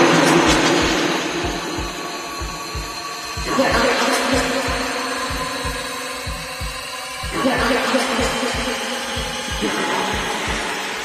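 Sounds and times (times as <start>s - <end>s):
kick drum: 0.5s - 10.8s.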